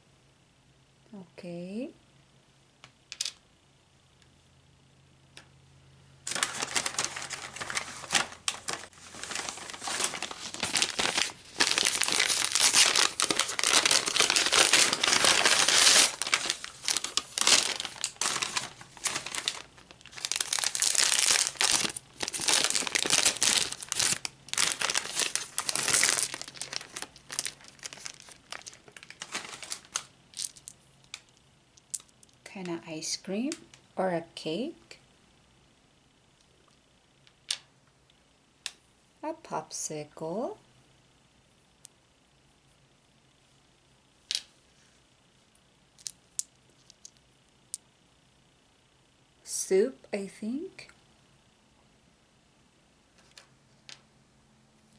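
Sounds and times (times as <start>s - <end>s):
bag crinkling and rustling: 6.3s - 30.8s.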